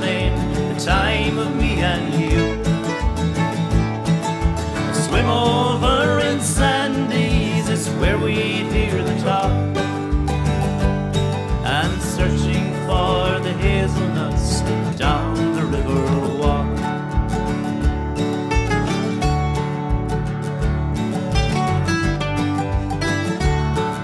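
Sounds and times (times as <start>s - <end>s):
acoustic guitars: 0.0s - 24.0s
bass line: 0.0s - 24.0s.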